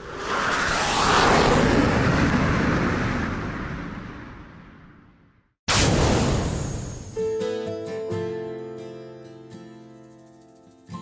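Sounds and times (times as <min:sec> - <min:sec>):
rushing whoosh: 0:00.0 - 0:07.2.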